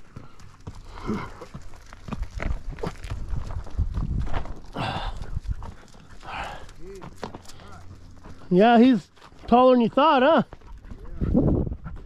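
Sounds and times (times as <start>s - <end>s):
hooves on rocky gravel: 0.0s - 12.0s
breathy rushes: 0.3s - 1.6s, 4.6s - 6.8s.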